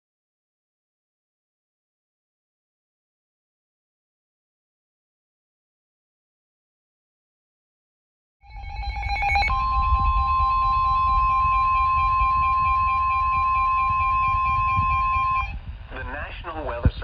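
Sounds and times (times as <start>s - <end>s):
data tones: 8.4s - 15.6s
pulsing beep: 8.4s - 15.6s
steady alarm tone: 8.4s - 15.6s.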